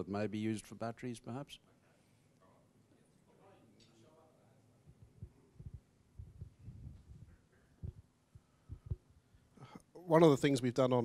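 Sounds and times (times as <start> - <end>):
microphone handling thumps: 4.9 - 8.1, 8.7 - 9.1.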